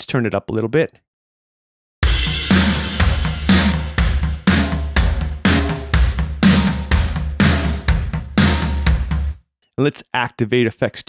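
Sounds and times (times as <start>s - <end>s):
drum kit playing a steady beat: 2.0s - 9.4s.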